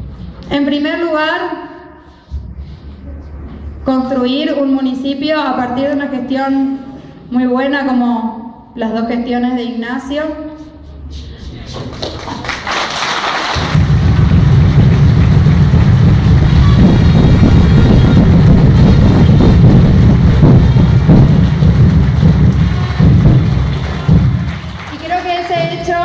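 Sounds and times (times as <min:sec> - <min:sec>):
audience applauding: 0:11.8 - 0:26.0
low rumble: 0:13.6 - 0:25.0.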